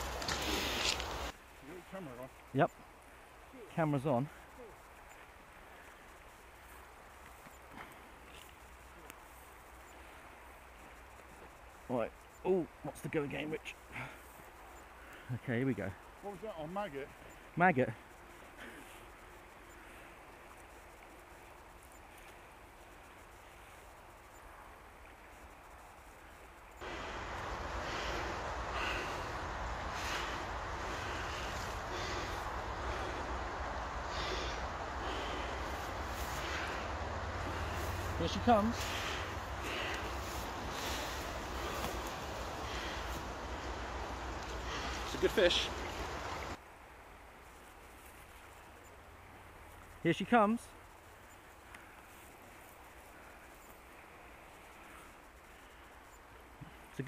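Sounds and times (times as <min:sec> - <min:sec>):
river flowing: 0:00.0 - 0:15.2, 0:16.0 - 0:50.1
wind: 0:00.0 - 0:57.0
wind rumbling on microphone: 0:26.8 - 0:45.1
river rushing: 0:26.8 - 0:46.6.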